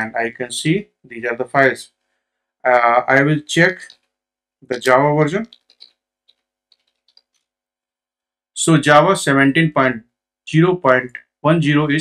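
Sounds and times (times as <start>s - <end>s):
soft typing on keyboard: 3.6s - 7.5s.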